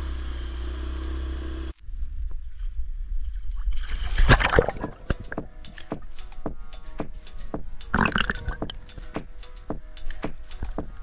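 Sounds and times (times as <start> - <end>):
music with sharp beat: 4.9 - 11.0.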